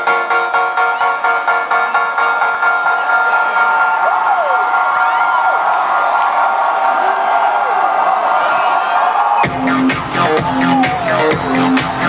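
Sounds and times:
concert crowd cheering: 0.0s - 12.0s
crowd whooping: 3.0s - 12.0s.

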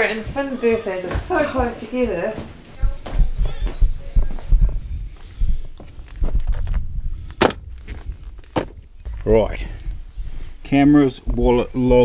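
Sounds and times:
footsteps: 0.0s - 12.0s
camera handling thuds: 7.4s - 7.6s, 8.4s - 8.8s.

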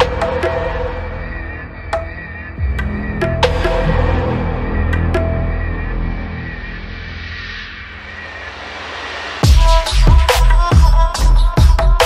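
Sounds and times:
electronic music whooshing swell: 0.0s - 9.6s.

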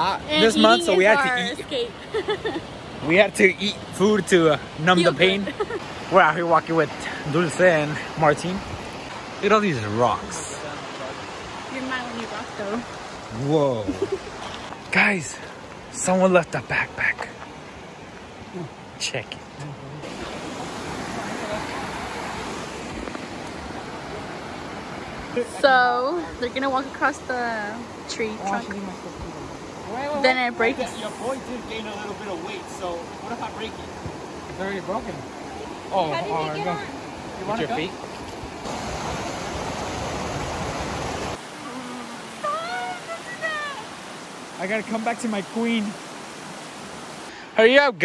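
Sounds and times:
creek rushing over rocks: 0.0s - 47.8s
creek water tumbling over rocks: 28.3s - 47.3s.

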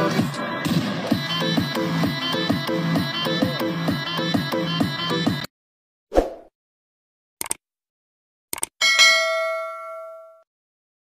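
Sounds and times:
bell ding: 8.8s - 10.5s.

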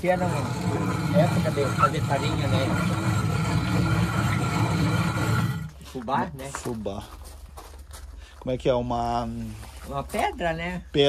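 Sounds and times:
stone mill grinding rumble: 0.0s - 7.1s.

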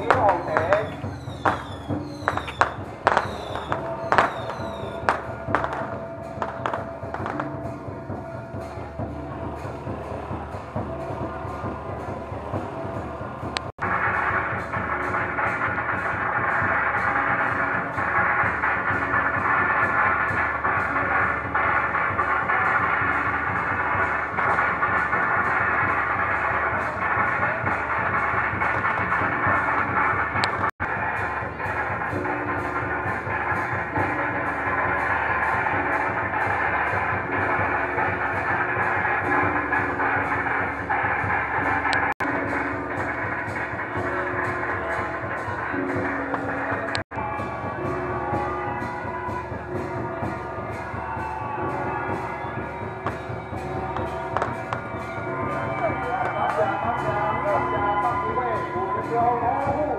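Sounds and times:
loud festival procession music: 0.0s - 59.9s.

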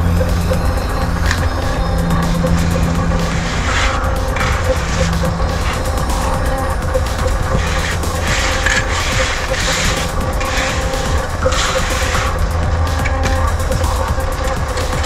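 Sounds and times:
electronic music with beat: 0.0s - 15.0s.

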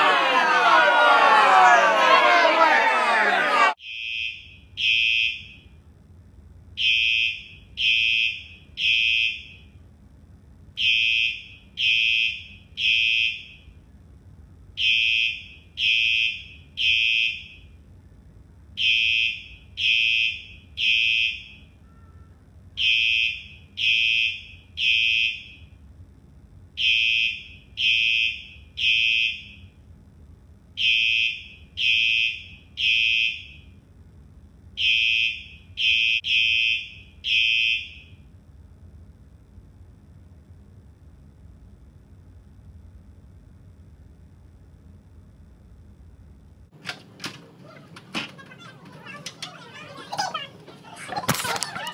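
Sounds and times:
fire alarm horn beeps: 3.8s - 5.8s, 6.8s - 9.8s, 10.8s - 13.8s, 14.8s - 17.8s, 18.8s - 25.8s, 26.8s - 29.8s, 30.8s - 33.8s, 34.8s - 38.3s.

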